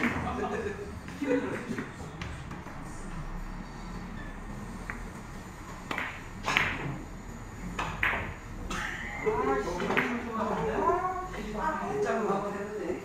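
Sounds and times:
billiard balls clicking: 5.9s - 7.0s.

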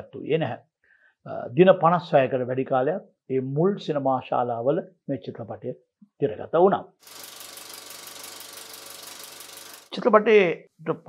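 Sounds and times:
film projector mechanical clatter: 7.0s - 10.0s.

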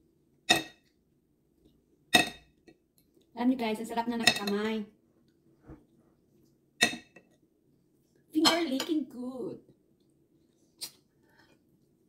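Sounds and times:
metal spoon clacking on dish: 6.8s - 7.2s.

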